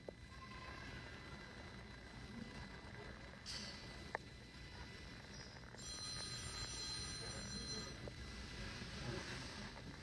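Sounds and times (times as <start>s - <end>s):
airport terminal hum: 0.0s - 10.0s.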